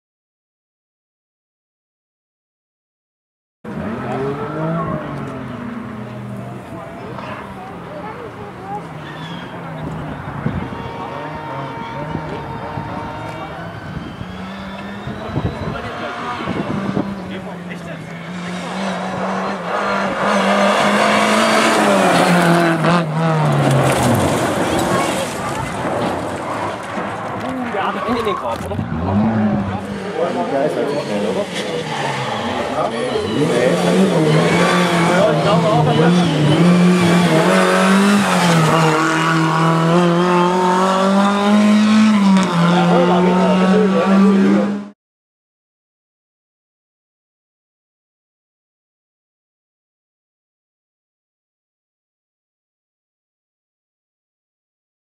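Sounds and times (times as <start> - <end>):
rally car engine at high revs: 3.7 - 45.0.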